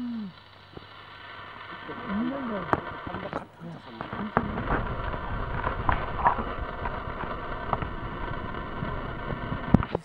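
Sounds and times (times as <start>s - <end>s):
background hiss: 0.0s - 10.0s
person speaking: 1.8s - 4.7s.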